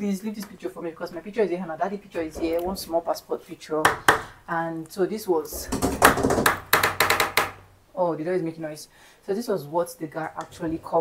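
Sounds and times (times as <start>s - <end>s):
door knocking and rattling: 2.2s - 3.1s, 5.5s - 7.7s.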